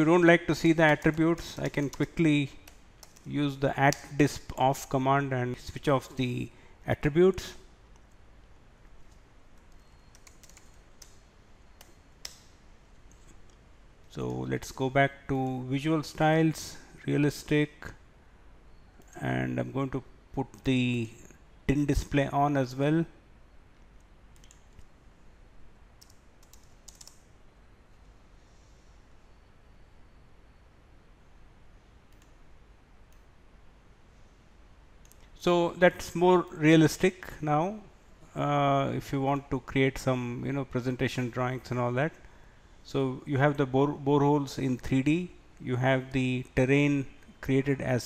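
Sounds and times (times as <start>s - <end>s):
faint steady hiss: 0.0s - 48.0s
computer mouse clicking: 0.8s - 3.3s, 8.8s - 11.2s, 24.0s - 24.9s, 26.0s - 27.3s, 32.1s - 32.4s
computer keyboard key clicks: 26.0s - 27.2s.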